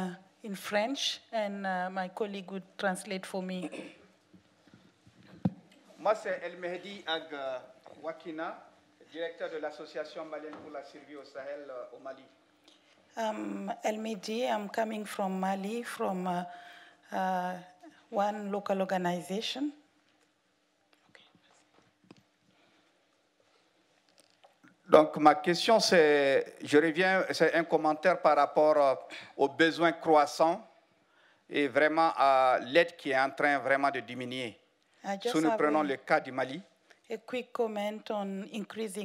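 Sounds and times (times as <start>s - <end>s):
microphone handling knocks: 5.2s - 5.7s.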